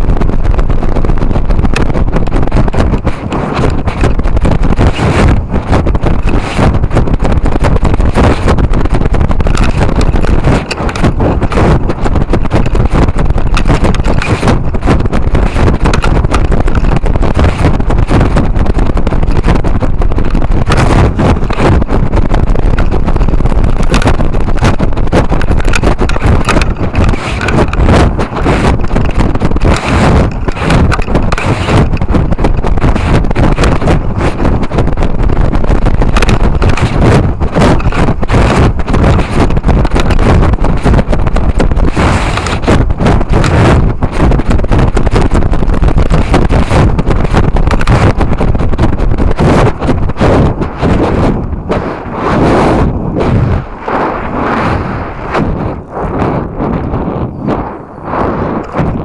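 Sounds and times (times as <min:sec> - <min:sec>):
wind roar and buffeting: 0:00.0 - 0:59.0.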